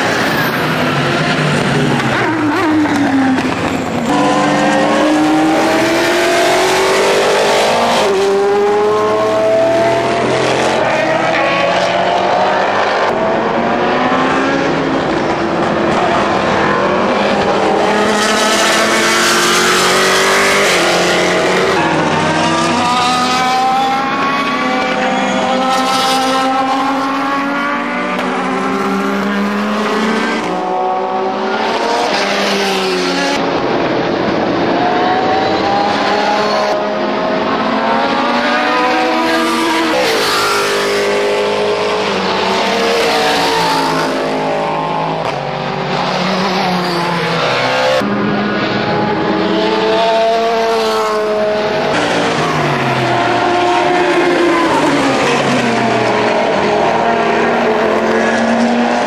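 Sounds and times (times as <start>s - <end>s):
race cars passing at speed: 0.0s - 59.0s.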